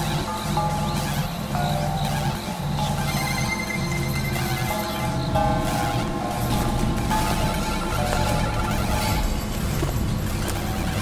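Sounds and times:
buzzing drone noise music: 0.0 - 11.0.

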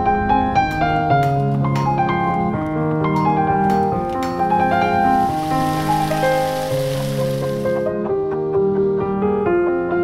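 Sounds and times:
slow piano music: 0.0 - 10.0
steady hiss: 4.5 - 7.9.

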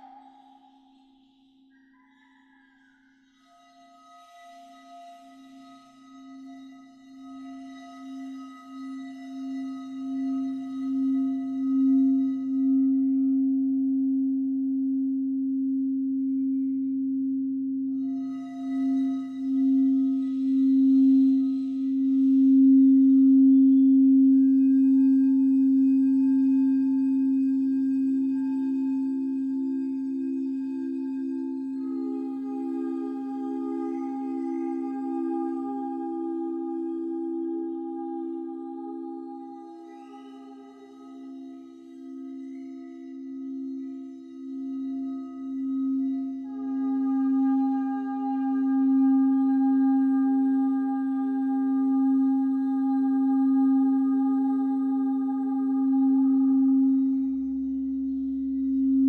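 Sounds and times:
singing bowl humming: 0.0 - 59.0.

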